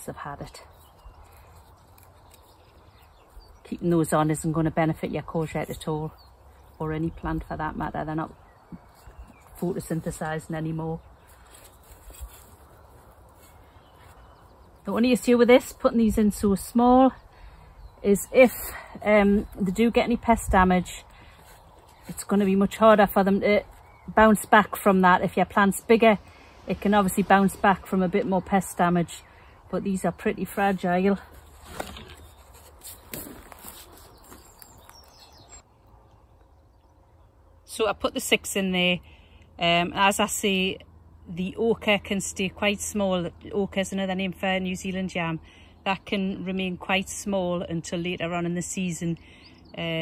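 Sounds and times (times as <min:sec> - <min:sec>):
faint outdoor ambience: 0:00.0 - 0:50.0.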